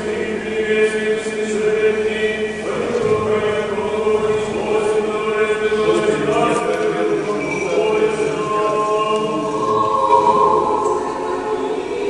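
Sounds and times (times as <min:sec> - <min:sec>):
choir chanting: 0:00.0 - 0:12.0.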